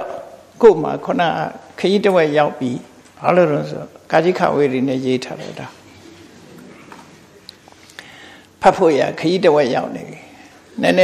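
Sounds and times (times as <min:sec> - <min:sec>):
faint bird cooing: 0:05.4 - 0:07.7.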